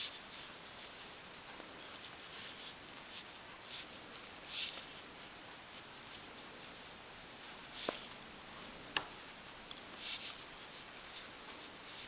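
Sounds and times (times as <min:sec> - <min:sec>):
steady high hiss: 0:00.0 - 0:12.0.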